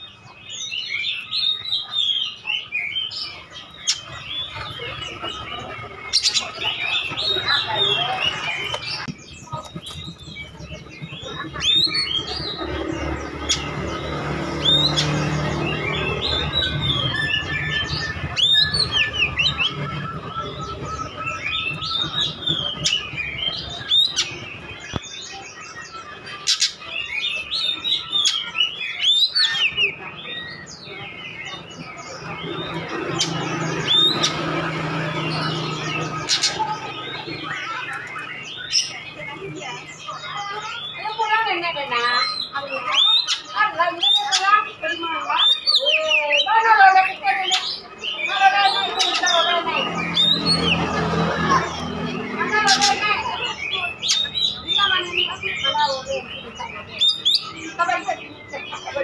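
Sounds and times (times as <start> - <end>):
bird singing whistles and chirps: 0.0 - 59.0.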